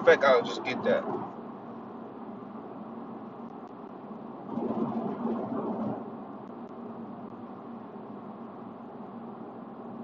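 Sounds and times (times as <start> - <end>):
vehicle rumble inside moving car: 0.0 - 10.0.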